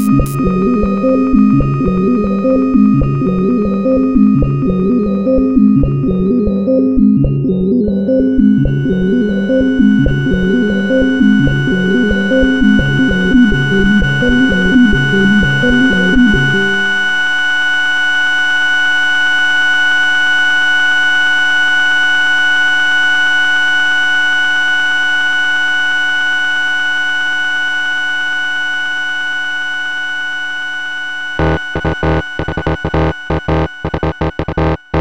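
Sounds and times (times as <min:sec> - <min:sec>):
choppy low synthesizer pattern: 0:00.0 - 0:17.2
sustained synthesizer drone chord: 0:00.0 - 0:19.6, 0:27.6 - 0:35.0.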